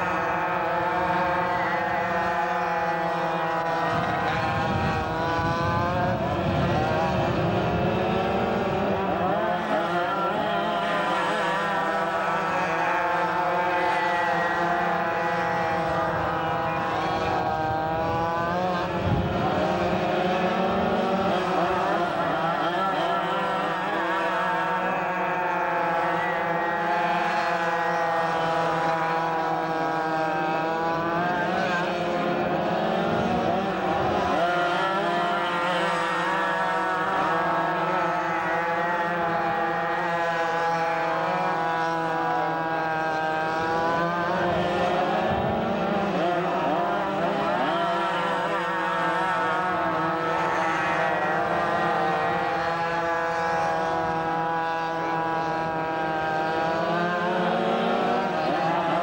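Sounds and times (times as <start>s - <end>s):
go-kart engines racing: 0.0s - 59.0s.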